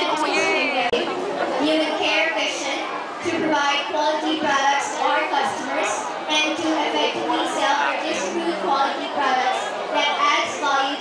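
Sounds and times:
woman talking: 0.0s - 1.0s
background chatter: 0.0s - 11.0s.

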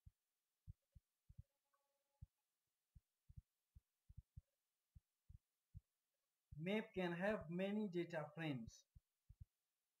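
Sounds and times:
faint low thumps: 0.0s - 6.8s.

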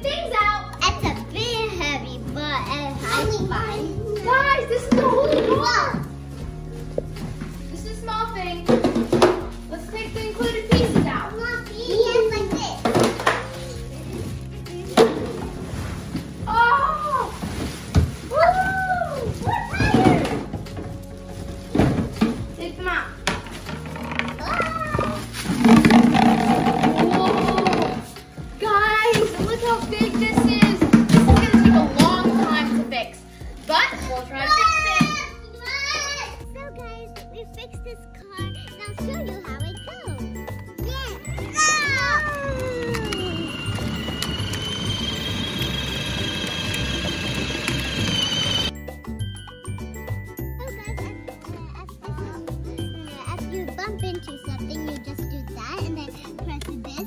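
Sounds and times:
children's voices: 0.0s - 6.1s, 28.6s - 32.9s, 33.6s - 44.0s, 50.5s - 57.0s
background music: 0.0s - 57.0s
plastic wrap rustling: 15.5s - 22.8s.

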